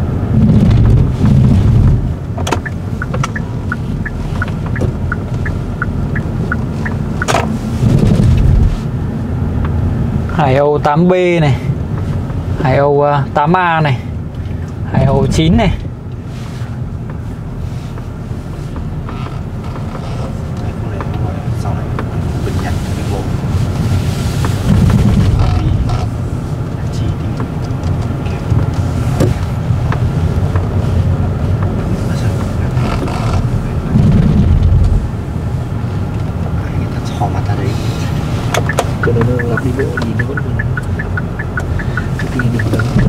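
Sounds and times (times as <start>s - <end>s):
wind rumble on microphone: 0.0s - 9.1s, 17.2s - 43.0s
road noise: 0.0s - 43.0s.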